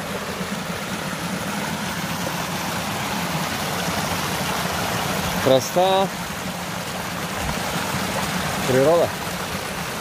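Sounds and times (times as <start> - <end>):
stream splashing over rocks: 0.0 - 10.0.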